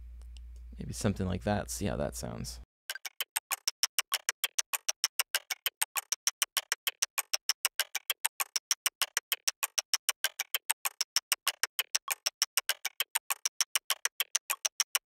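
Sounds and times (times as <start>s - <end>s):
chopstick clicks percussion loop: 2.9s - 15.0s.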